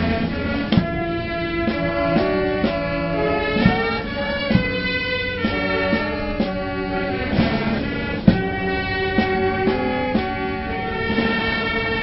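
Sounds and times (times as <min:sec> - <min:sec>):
brass band music: 0:00.0 - 0:12.0
drum hit: 0:03.6 - 0:06.6, 0:07.3 - 0:10.3.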